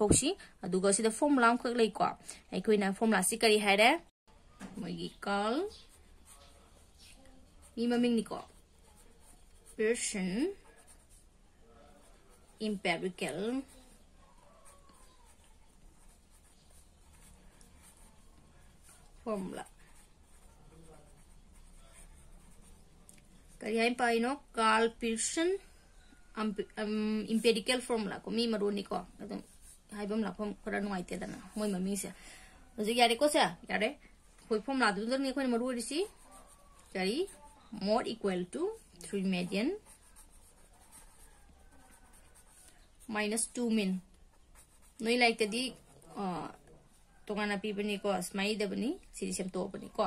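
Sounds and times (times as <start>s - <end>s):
felt-tip pen scratching paper: 5.7s - 11.2s, 14.6s - 22.8s, 35.3s - 37.7s, 39.4s - 42.8s, 44.4s - 45.8s.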